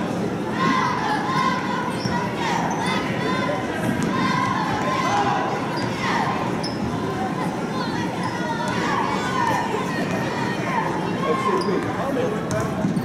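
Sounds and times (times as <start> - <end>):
crowd chatter: 0.0 - 13.0
sneaker squeaks: 1.3 - 5.0, 5.7 - 7.1, 11.1 - 13.0.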